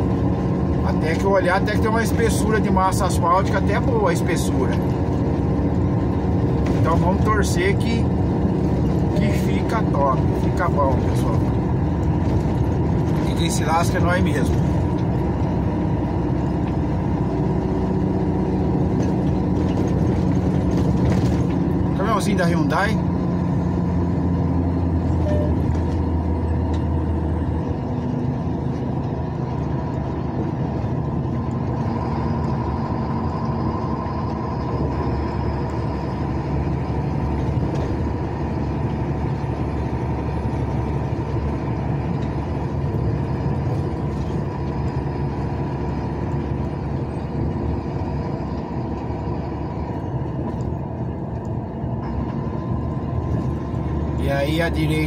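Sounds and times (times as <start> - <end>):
tyre and road noise: 0.0 - 55.0
vehicle engine drone: 0.0 - 55.0.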